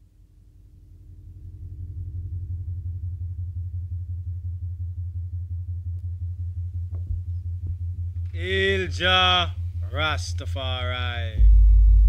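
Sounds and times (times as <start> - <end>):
deep pulsing bass tone: 0.0 - 12.0.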